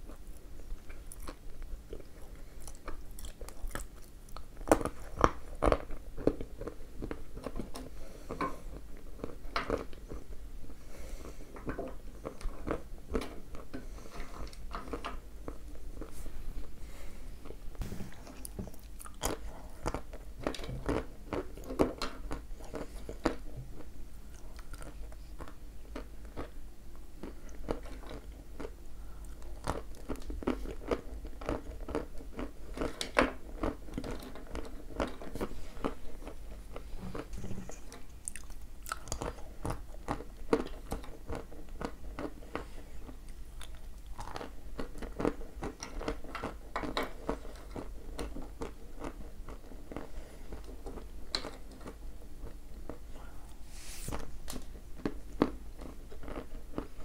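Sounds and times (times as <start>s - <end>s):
crunchy chewing: 0.0s - 10.4s, 18.2s - 26.6s, 27.2s - 57.0s.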